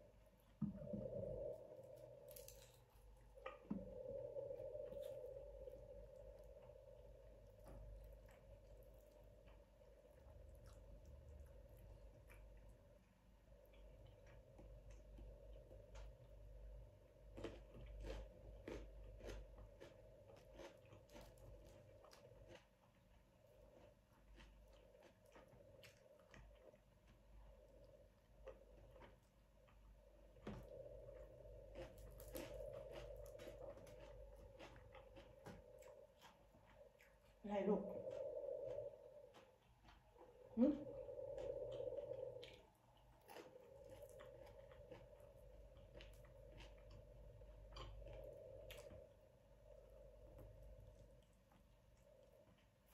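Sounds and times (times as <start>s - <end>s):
chewing and crunching food: 0.0s - 52.9s
steady faint hum: 0.0s - 52.9s.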